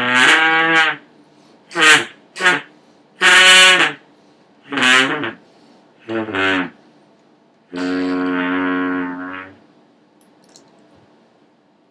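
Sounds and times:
hose horn low note: 0:07.7 - 0:09.6.

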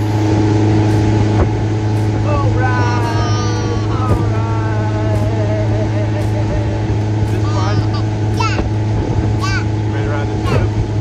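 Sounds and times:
motorboat engine humming: 0:00.0 - 0:11.0.

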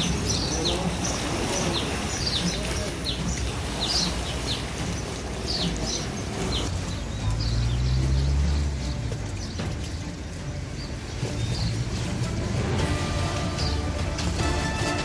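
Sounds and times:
small birds chirping: 0:00.0 - 0:14.3
river water lapping: 0:00.0 - 0:15.0.

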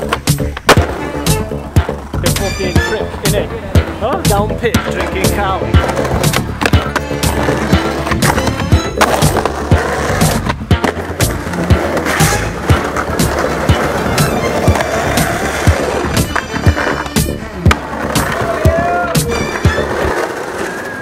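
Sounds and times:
background music with steady beat: 0:00.0 - 0:20.1
skateboard clacks: 0:00.0 - 0:21.0
skateboard wheels rolling on pavement: 0:00.0 - 0:21.0.

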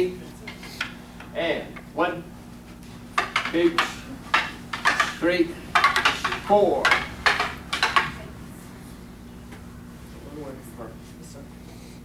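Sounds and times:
wooden practice swords clacking: 0:03.1 - 0:08.3.

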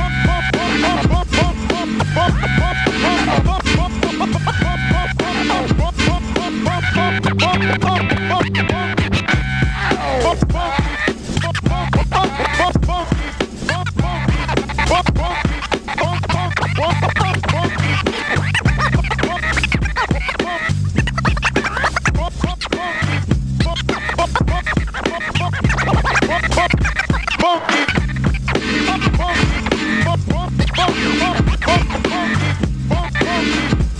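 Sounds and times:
hip-hop beat: 0:00.0 - 0:33.9
steady bass line: 0:00.0 - 0:33.9
turntable scratching: 0:00.0 - 0:33.9.

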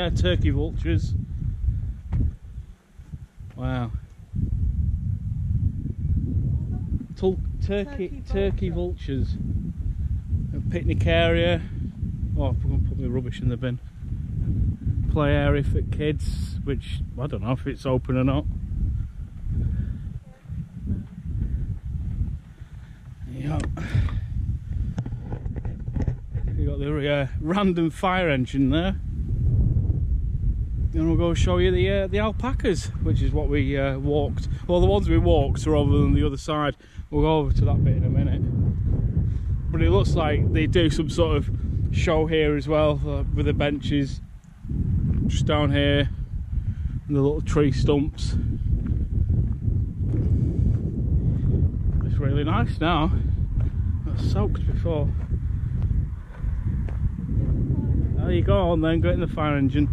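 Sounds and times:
wind rumbling on microphone: 0:00.0 - 0:59.9.

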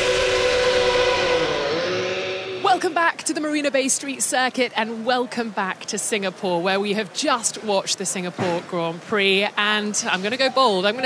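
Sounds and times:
racing car engine: 0:00.0 - 0:03.8
rushing noise: 0:00.0 - 0:04.0.

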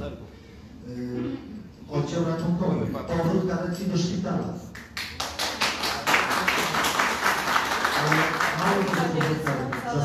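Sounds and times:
audience applauding: 0:04.9 - 0:10.0.

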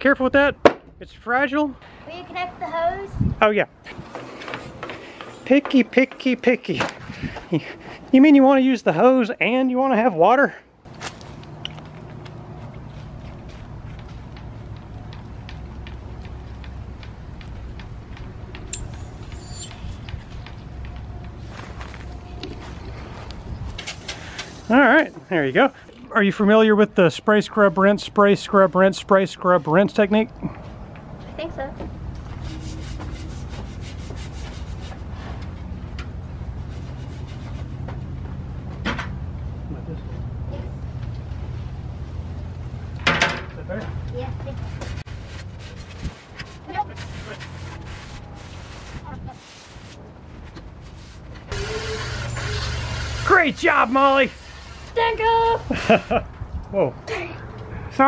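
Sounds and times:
brush scrubbing a board: 0:32.4 - 0:35.0, 0:36.6 - 0:37.9, 0:44.6 - 0:50.0, 0:50.8 - 0:52.0.

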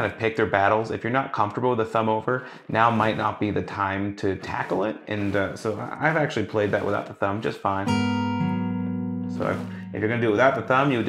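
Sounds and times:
acoustic guitar chord ringing: 0:07.9 - 0:10.6.

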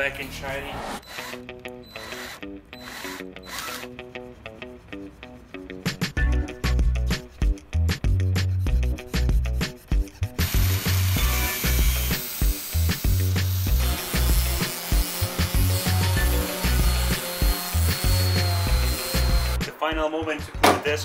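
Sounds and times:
background music with steady beat: 0:00.1 - 0:21.0
electric sander on wood: 0:10.4 - 0:19.6.

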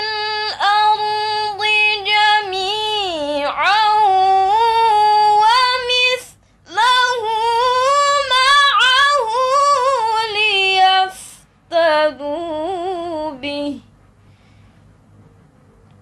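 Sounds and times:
girl reciting melodically: 0:00.0 - 0:13.8.

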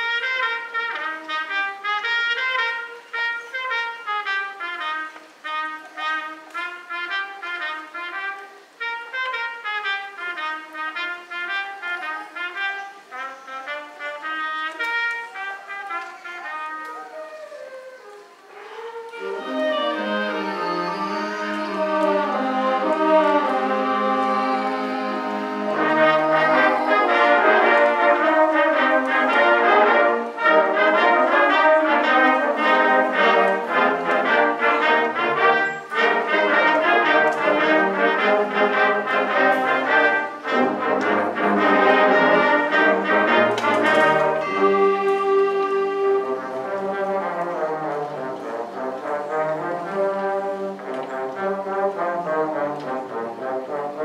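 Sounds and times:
concert band playing: 0:00.0 - 0:54.0
low brass: 0:00.0 - 0:54.0.

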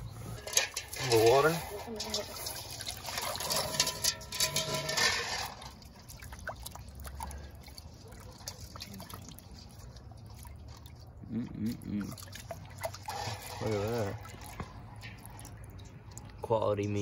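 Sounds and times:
water dripping: 0:00.0 - 0:17.0
water splashing in metal bowl: 0:00.0 - 0:17.0.

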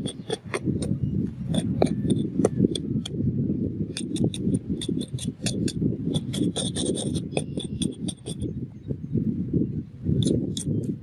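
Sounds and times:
rasping scrape on shell: 0:00.0 - 0:00.9, 0:01.5 - 0:02.8, 0:04.0 - 0:08.4
sharp clicks: 0:04.0 - 0:08.4.

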